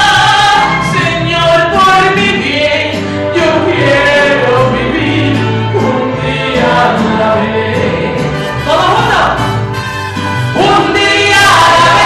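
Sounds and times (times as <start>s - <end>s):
instrumental accompaniment with bass: 0.0s - 12.0s.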